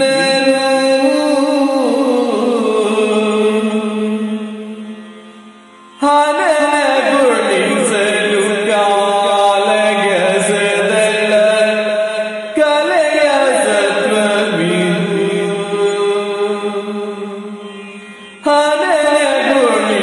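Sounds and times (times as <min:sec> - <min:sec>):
man singing long gliding notes: 0:00.0 - 0:20.0.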